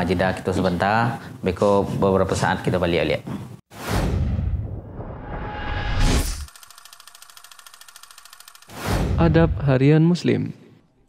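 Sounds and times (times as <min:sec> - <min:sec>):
loud whoosh: 0:03.7 - 0:06.5
fast ticking rattle: 0:06.5 - 0:08.7.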